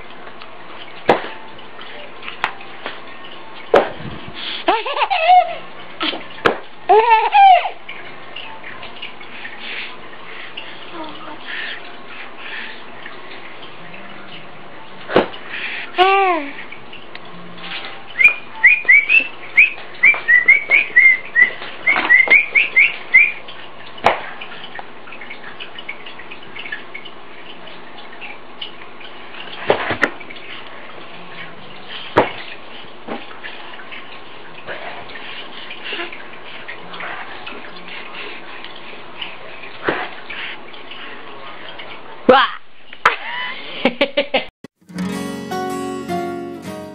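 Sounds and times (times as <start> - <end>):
low background hum: 0.0 - 44.4.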